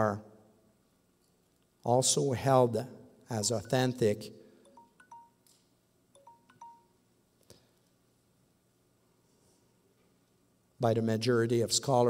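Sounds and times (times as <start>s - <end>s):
faint chime-like pings: 3.5s - 5.5s, 6.2s - 7.0s.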